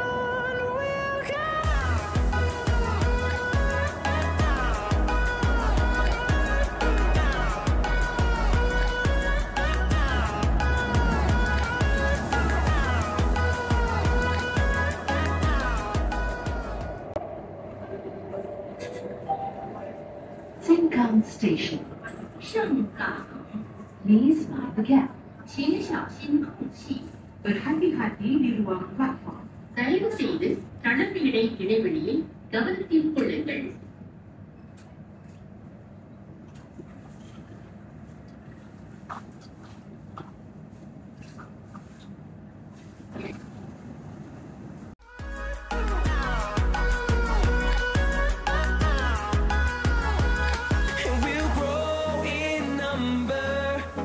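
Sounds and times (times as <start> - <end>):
train cabin rumble: 0.0 - 27.4
onboard announcement speech: 9.5 - 33.8.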